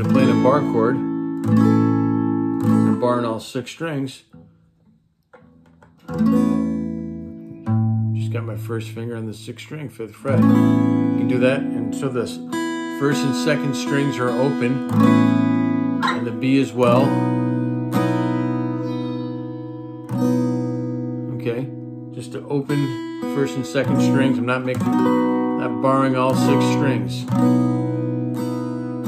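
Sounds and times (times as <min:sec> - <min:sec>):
acoustic guitar chord strummed: 0:00.0 - 0:03.4, 0:05.4 - 0:29.0
guitar string and fret noises: 0:00.0 - 0:29.0.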